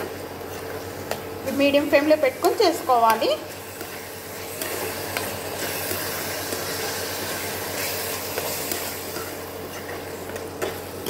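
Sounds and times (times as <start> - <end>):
soft sizzle: 0.0 - 11.0
spatula scraping a pan: 3.0 - 10.2.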